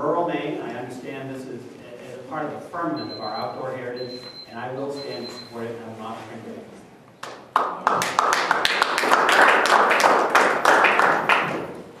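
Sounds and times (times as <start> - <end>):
audience applauding: 7.5 - 12.0.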